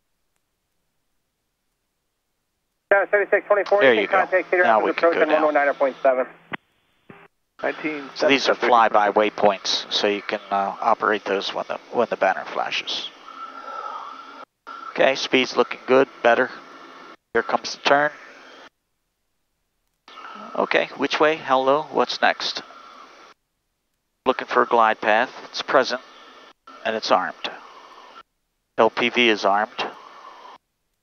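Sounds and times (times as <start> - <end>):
voice over aircraft radio: 2.9 - 6.3, 7.6 - 13.1
cockpit engine hiss: 7.6 - 18.7, 20.1 - 23.4, 24.3 - 28.2.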